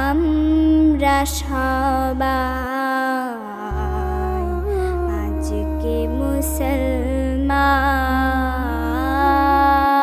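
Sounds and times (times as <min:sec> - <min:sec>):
steady low drone: 0:03.7 - 0:10.0.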